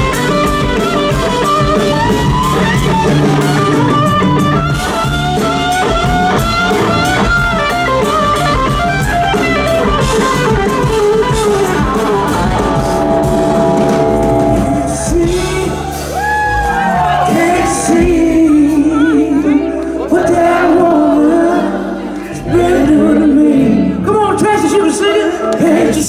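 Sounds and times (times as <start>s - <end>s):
electric guitar solo: 0.0s - 20.7s
drums: 0.0s - 21.5s
bass guitar: 0.0s - 26.0s.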